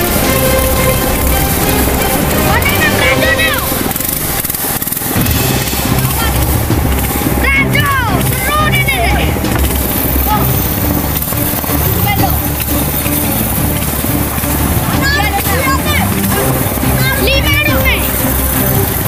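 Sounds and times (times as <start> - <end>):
shouted calls: 0.0 - 4.8, 5.8 - 19.0
river rapids rushing: 0.0 - 19.0.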